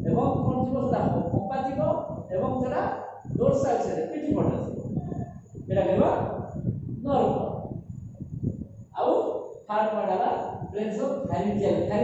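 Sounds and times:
man speaking: 0.1 - 4.8, 9.0 - 12.0.

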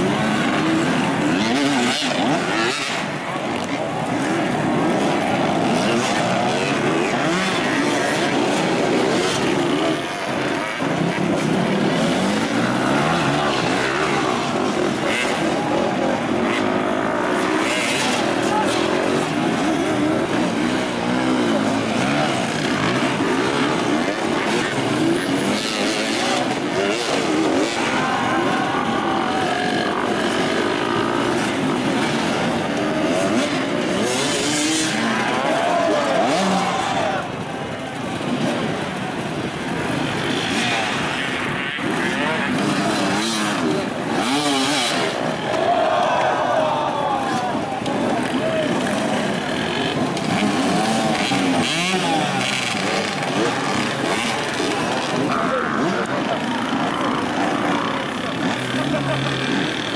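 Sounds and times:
dirt bike engines revving: 0.0 - 59.9
voices: 0.0 - 59.9.

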